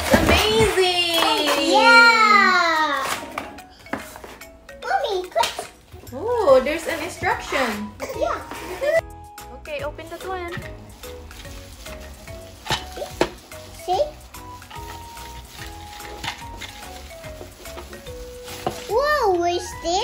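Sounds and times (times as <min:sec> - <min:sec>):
background music: 0:00.0 - 0:20.0
child's voice: 0:00.3 - 0:03.4, 0:04.8 - 0:05.7, 0:18.9 - 0:20.0
bubble wrap crinkling: 0:06.2 - 0:09.0, 0:09.7 - 0:20.0.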